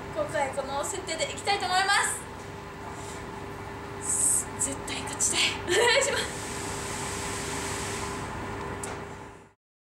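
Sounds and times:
background hum and hiss: 0:00.0 - 0:09.6.

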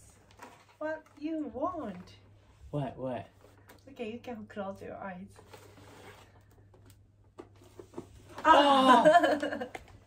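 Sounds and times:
gift wrapping rustling: 0:05.4 - 0:08.5.

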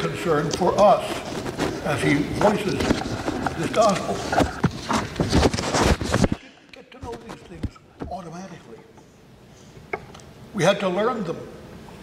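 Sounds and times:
paper rustling: 0:00.6 - 0:06.4, 0:07.0 - 0:08.3.

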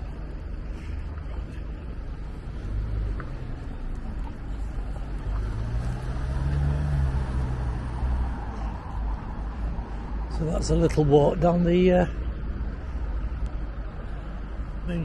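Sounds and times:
car engine hum: 0:00.0 - 0:15.0
low traffic rumble: 0:00.0 - 0:15.0.

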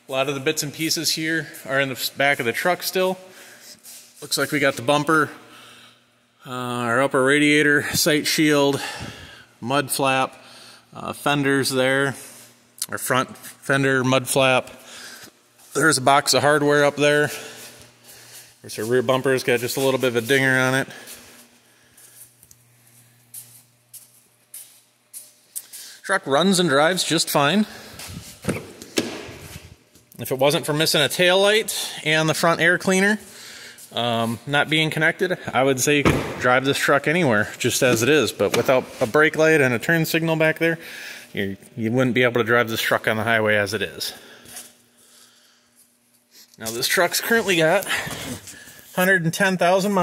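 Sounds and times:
footsteps scuffing on concrete: 0:17.3 - 0:25.7.

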